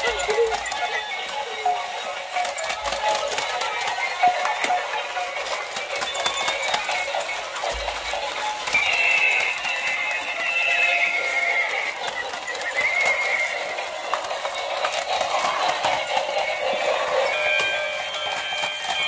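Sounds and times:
plastic toy legs clicking: 0.0s - 19.0s
recorded hoof clip-clop: 0.0s - 19.0s.

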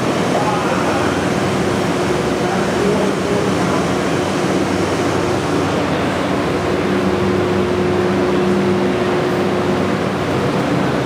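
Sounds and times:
low machinery hum: 0.0s - 11.0s.

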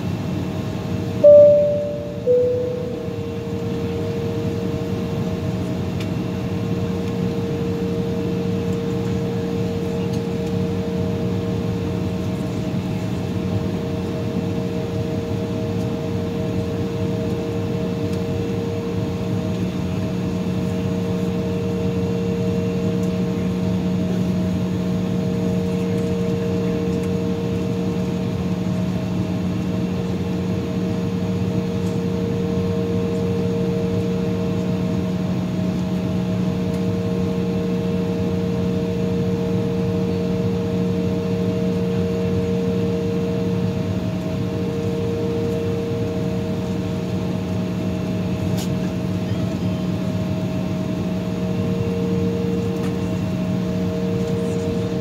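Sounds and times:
air conditioning running: 0.0s - 55.0s
jet engines idling in cabin: 0.0s - 55.0s.

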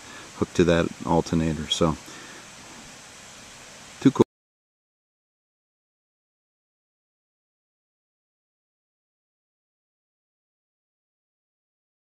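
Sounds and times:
faint background hiss: 0.0s - 4.3s.

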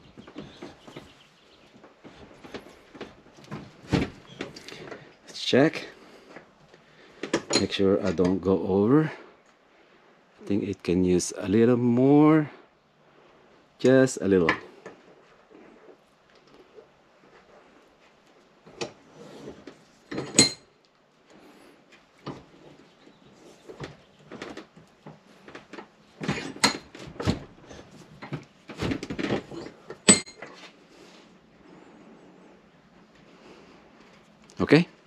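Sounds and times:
metallic clinks and knocks: 20.1s - 20.7s, 29.2s - 30.6s
sharp metal clank: 30.1s - 30.4s.

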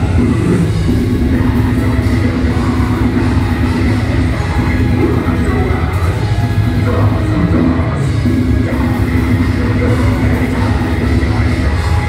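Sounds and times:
drums: 0.0s - 12.0s
heavily distorted guitars: 0.0s - 12.0s.

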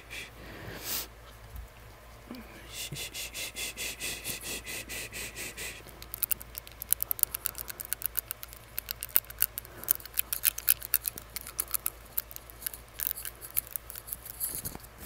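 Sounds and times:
tongue ring clicking on teeth: 5.8s - 14.6s.

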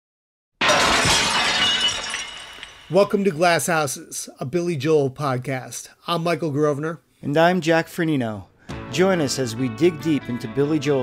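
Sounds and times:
glass shattering: 0.6s - 3.2s
glass tinkling: 1.1s - 3.1s.

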